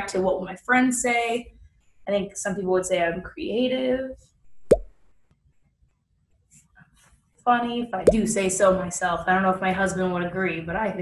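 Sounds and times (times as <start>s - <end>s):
sharp pop: 4.6s - 5.0s.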